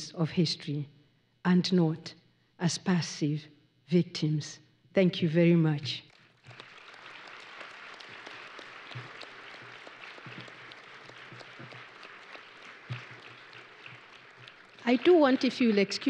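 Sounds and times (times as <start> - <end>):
audience applauding: 6.1 - 16.0.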